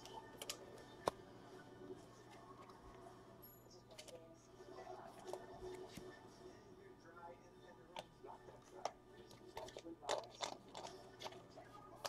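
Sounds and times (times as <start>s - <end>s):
trading cards clicking and snapping: 0.0s - 1.2s
low steady hum: 0.0s - 12.0s.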